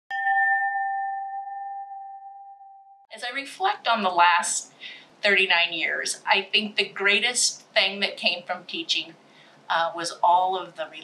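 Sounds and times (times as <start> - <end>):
bell-like chime: 0.1 - 2.7.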